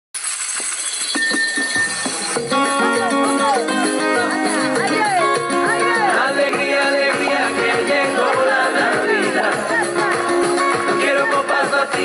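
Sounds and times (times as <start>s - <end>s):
jingling sleigh bells: 0.2s - 11.9s
festive christmas music: 0.2s - 12.0s.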